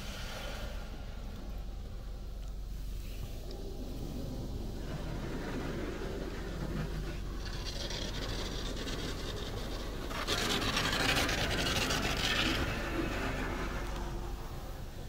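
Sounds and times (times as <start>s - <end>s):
water spray hissing on car: 0.0s - 15.0s.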